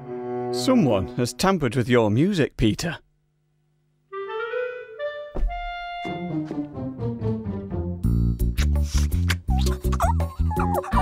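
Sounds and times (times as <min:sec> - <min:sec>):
woodwind score music: 0:04.1 - 0:07.6.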